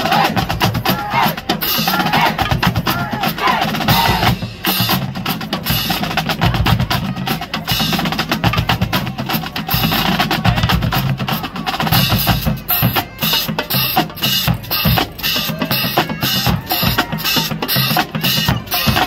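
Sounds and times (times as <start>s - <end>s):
bass drum beats: 0.0s - 19.0s
snare drum rolls: 0.0s - 19.0s.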